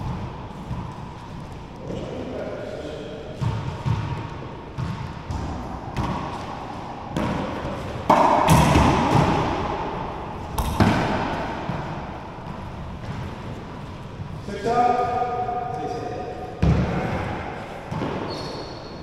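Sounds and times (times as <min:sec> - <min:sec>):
racquetball smacks echoing: 0:03.4 - 0:13.4, 0:16.5 - 0:18.9.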